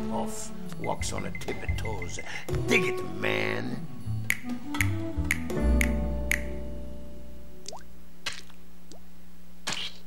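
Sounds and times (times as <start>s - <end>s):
finger snaps: 4.2s - 6.7s.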